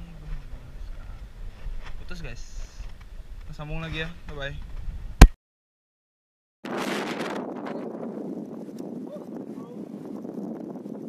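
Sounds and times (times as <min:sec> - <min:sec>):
wind buffeting microphone: 0:00.0 - 0:05.3, 0:06.7 - 0:11.0.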